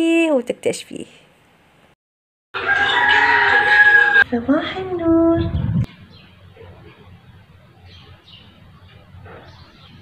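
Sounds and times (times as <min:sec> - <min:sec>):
rooster crowing: 0:02.6 - 0:04.3.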